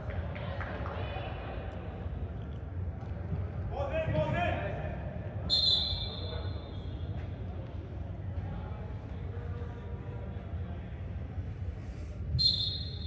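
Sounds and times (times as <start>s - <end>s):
low hum of sports hall: 0.0s - 13.0s
referee's whistle blast: 12.4s - 13.0s.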